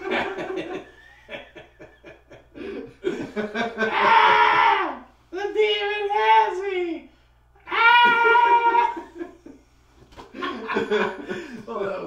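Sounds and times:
man yelling: 0:03.9 - 0:09.2.

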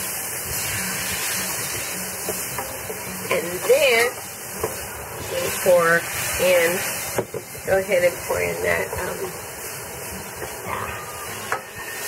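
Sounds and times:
vegetables sizzling in a pan: 0:00.0 - 0:12.0.

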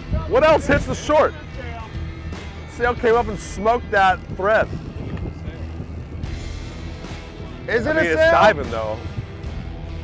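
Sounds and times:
background music: 0:00.0 - 0:10.0
boat engines rumbling: 0:00.0 - 0:10.0
wind: 0:00.0 - 0:10.0.

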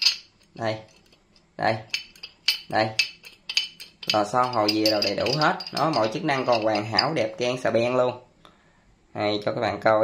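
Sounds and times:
metal wrench clicking and clinking: 0:00.0 - 0:01.2, 0:01.9 - 0:07.2.

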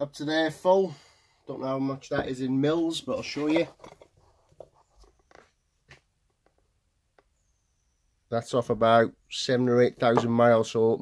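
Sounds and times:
faint handling clicks and knocks: 0:03.7 - 0:07.3.

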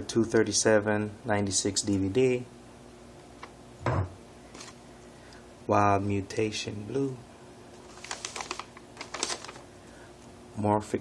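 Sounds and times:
paper slips rustling and crackling: 0:07.8 - 0:09.6.

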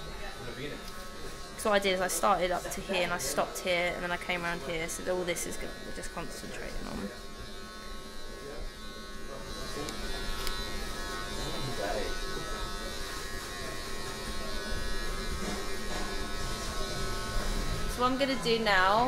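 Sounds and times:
electric hair clippers buzzing: 0:00.0 - 0:19.0.

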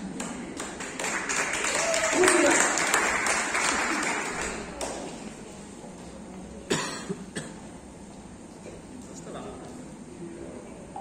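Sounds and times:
audience applause: 0:00.0 - 0:05.2
sharp cough: 0:06.7 - 0:07.6.

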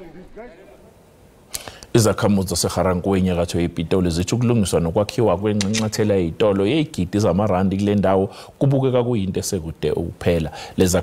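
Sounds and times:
man speaking: 0:00.0 - 0:01.0, 0:01.9 - 0:11.0.

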